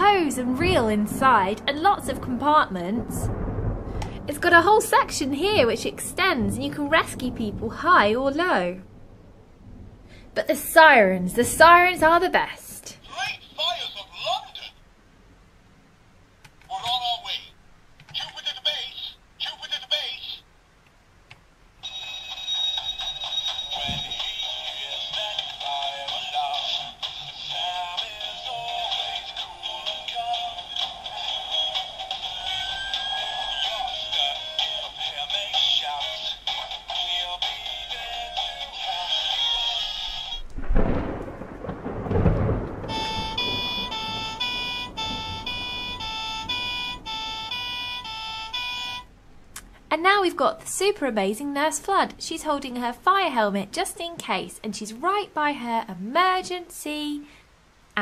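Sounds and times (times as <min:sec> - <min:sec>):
tinny toy music with voices: 0:21.8 - 0:40.4
electronic tones stepping in pitch: 0:31.7 - 0:34.1, 0:42.9 - 0:49.1.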